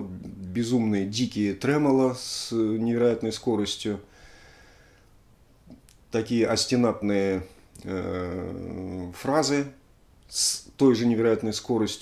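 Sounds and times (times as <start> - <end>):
soft breath: 4.0 - 5.2
mouth click: 5.7 - 6.1.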